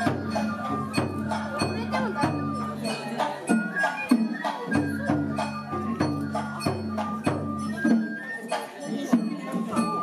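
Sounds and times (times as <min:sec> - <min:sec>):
bamboo flutes: 0:00.0 - 0:10.0
taiko drums beating: 0:00.0 - 0:10.0.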